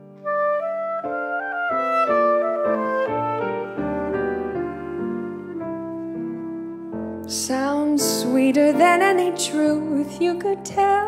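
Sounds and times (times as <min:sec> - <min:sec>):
clarinet melody: 0:00.0 - 0:07.8
sustained piano chords: 0:00.0 - 0:11.0.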